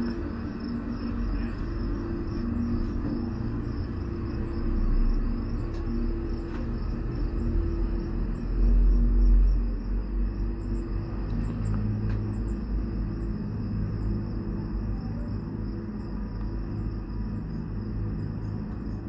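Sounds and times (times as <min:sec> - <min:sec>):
gondola cabin rumble and hum: 0:00.0 - 0:19.0
insects chirping: 0:00.0 - 0:19.0.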